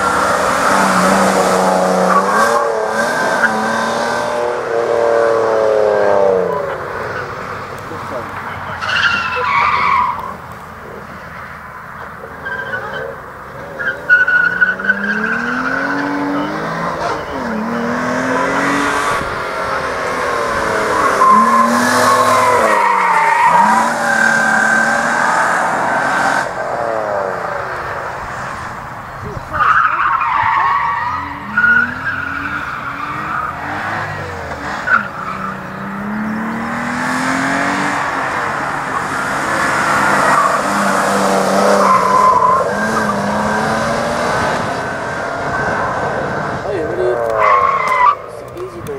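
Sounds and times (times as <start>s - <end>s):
car engine revving: 0.0s - 48.9s
tyres squealing: 6.2s - 48.9s.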